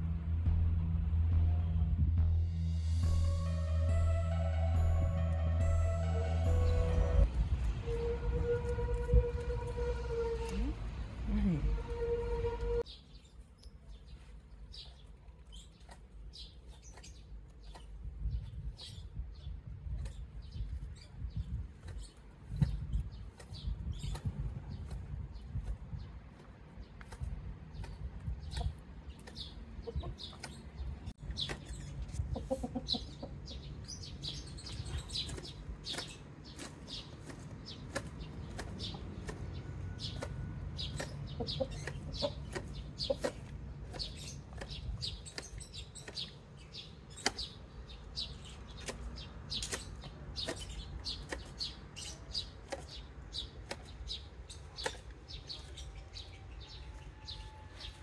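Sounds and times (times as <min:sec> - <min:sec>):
low rumble: 0:00.0 - 0:12.8
chickens clucking: 0:27.0 - 0:30.8, 0:31.4 - 0:33.6, 0:36.6 - 0:46.2.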